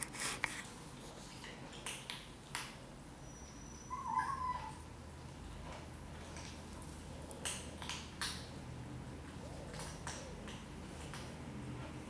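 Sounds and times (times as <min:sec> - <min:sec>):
cat meowing: 0:03.8 - 0:04.8.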